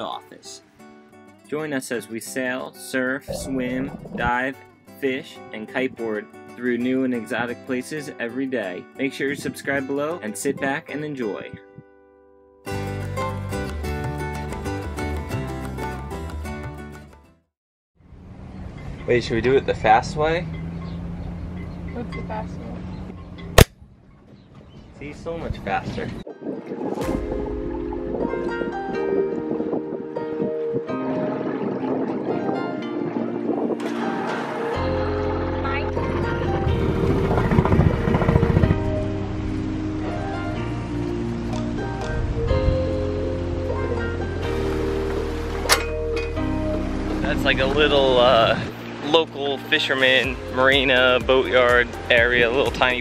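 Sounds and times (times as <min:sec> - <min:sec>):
background music chords and bass: 0:02.9 - 0:10.9, 0:12.6 - 0:17.4, 0:27.0 - 0:53.0
loud sharp crack: 0:23.6 - 0:23.8.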